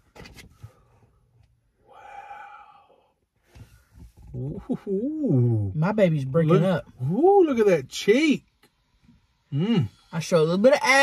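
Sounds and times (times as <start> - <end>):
soft breathy sigh: 1.8 - 3.2.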